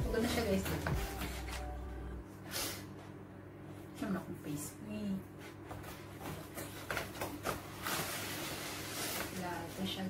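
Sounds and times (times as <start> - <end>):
rustling: 5.8 - 10.0.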